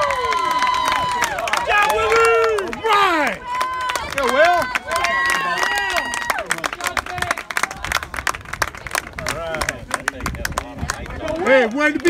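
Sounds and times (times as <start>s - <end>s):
crowd clapping: 0.0s - 12.0s.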